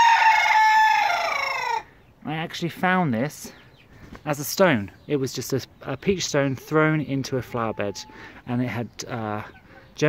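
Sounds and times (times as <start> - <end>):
rooster crowing: 0.0 - 1.9.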